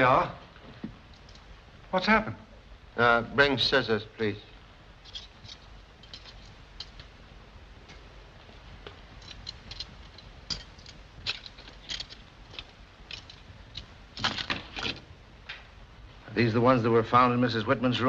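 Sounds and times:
film soundtrack hiss: 0:00.0 - 0:18.0
handling clicks and knocks: 0:05.0 - 0:07.2, 0:07.8 - 0:15.7.

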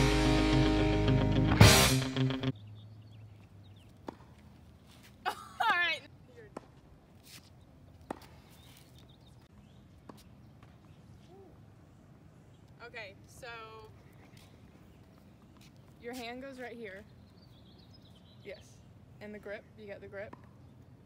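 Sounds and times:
music: 0:00.0 - 0:02.5
quiet outdoor ambience: 0:02.5 - 0:21.0.

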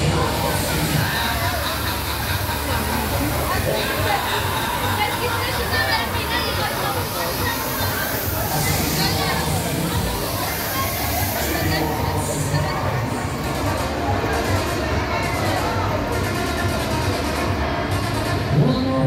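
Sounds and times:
fog jets hissing: 0:00.0 - 0:13.6.

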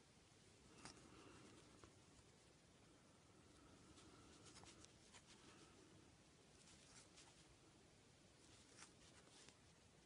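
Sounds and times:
crochet hook drawing yarn: 0:08.4 - 0:09.6.

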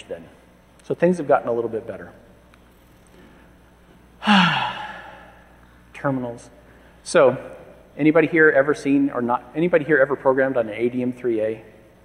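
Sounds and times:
man sighing: 0:04.2 - 0:05.5.

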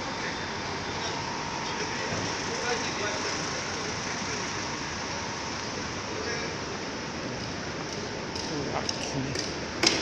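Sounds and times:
street traffic passing: 0:00.0 - 0:10.0.

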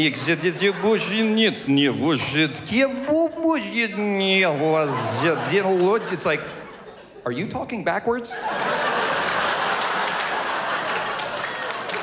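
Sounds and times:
audience laughing: 0:00.0 - 0:07.6, 0:08.2 - 0:12.0
audience applauding: 0:08.4 - 0:12.0.

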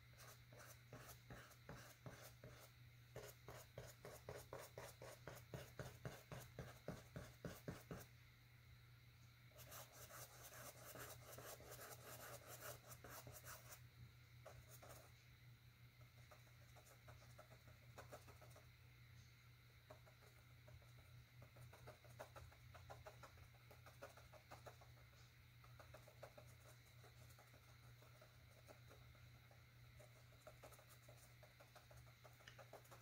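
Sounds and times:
paintbrush tapping and scratching: 0:00.0 - 0:08.1, 0:09.6 - 0:13.8, 0:14.4 - 0:15.2, 0:16.0 - 0:18.8, 0:19.8 - 0:33.0
low steady hum: 0:00.0 - 0:33.0.

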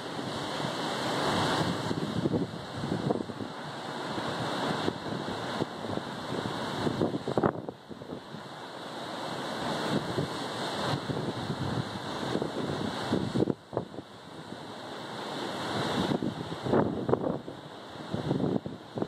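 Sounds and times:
rough sea: 0:00.0 - 0:19.0
wind buffeting microphone: 0:01.1 - 0:03.6, 0:04.2 - 0:08.4, 0:09.8 - 0:14.6, 0:15.6 - 0:19.0.

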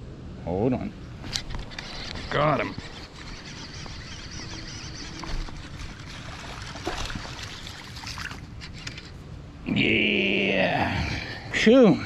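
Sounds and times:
water splashing and lapping: 0:01.6 - 0:09.2.

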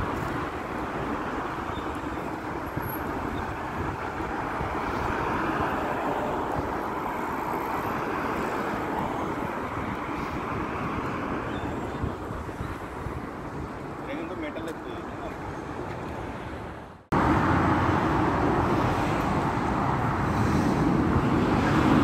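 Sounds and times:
city street traffic: 0:00.0 - 0:22.0.

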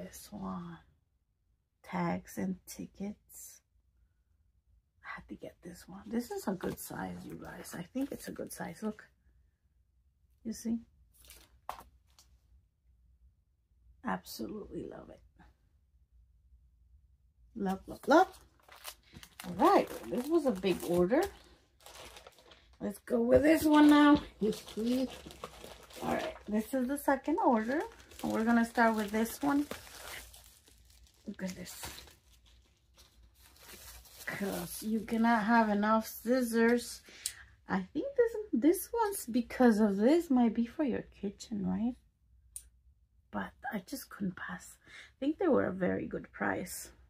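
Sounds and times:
plastic sleeve crinkling: 0:17.8 - 0:35.3.

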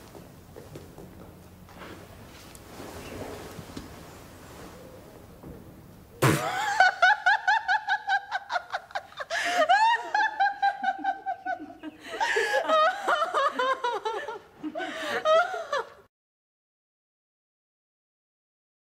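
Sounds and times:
woman laughing heartily: 0:06.4 - 0:16.1.

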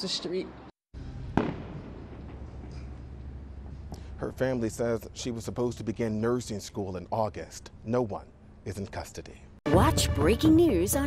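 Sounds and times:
street ambience hum: 0:00.0 - 0:09.6
sharp pop: 0:01.4 - 0:02.9.

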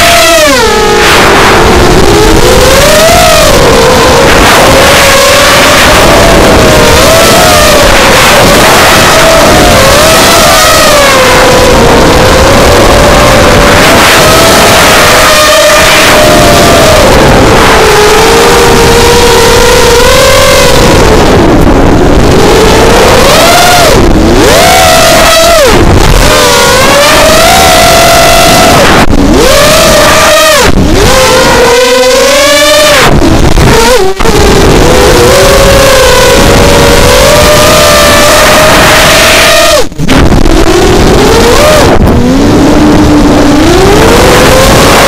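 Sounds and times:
quadcopter motors whining: 0:00.0 - 0:45.0.

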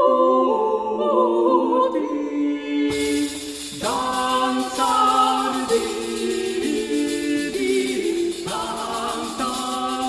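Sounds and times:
vocal ensemble singing polyphony: 0:00.0 - 0:10.0.

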